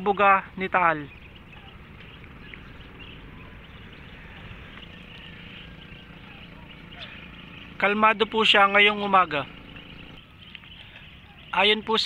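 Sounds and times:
wind rumbling on microphone: 0:00.8 - 0:10.6.

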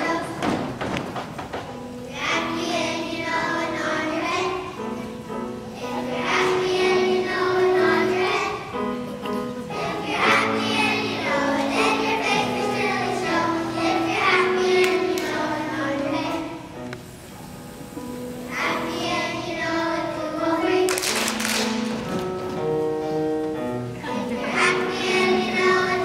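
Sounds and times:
children singing: 0:00.0 - 0:00.7, 0:02.1 - 0:16.8, 0:18.4 - 0:21.8, 0:24.0 - 0:26.0
upright piano: 0:00.0 - 0:26.0.

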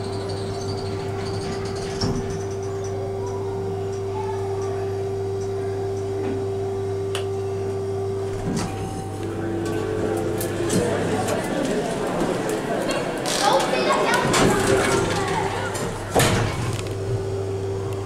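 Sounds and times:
crowd chatter: 0:00.0 - 0:18.0
elevator hum with single tone: 0:00.0 - 0:18.0.

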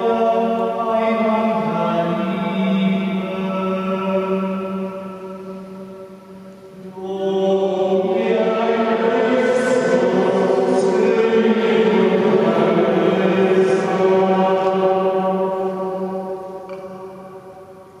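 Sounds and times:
voices chanting in unison: 0:06.8 - 0:16.8.

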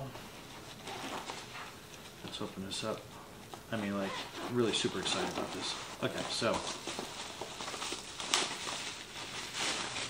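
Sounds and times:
plastic wrapping crinkling: 0:03.7 - 0:10.0.

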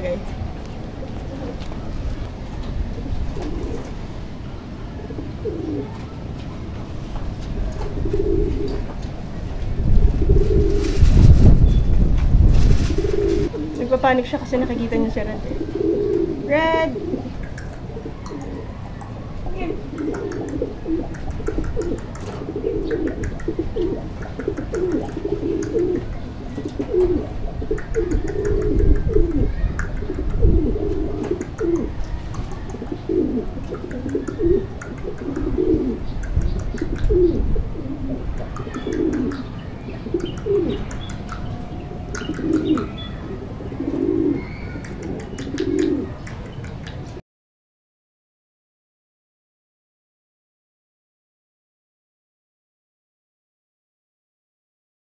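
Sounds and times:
pigeons cooing: 0:00.0 - 0:12.0, 0:12.6 - 0:47.2.

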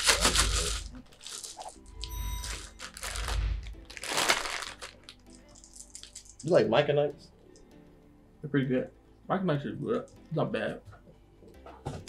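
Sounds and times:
plastic snack bag crinkling: 0:00.0 - 0:06.6.

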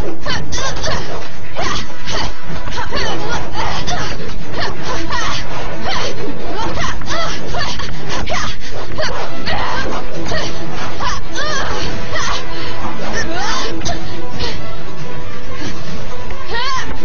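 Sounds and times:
loud background music: 0:00.0 - 0:17.0.

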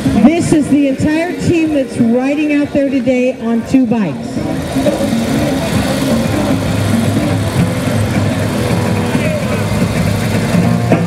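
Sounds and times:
song over loudspeakers: 0:00.0 - 0:06.0
motorcycle engines running: 0:00.0 - 0:11.0.

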